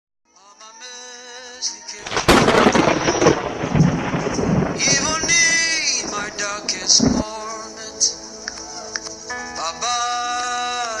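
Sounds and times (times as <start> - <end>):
gospel song: 0.3 - 11.0
thunder-like crash and rumble: 2.0 - 7.6.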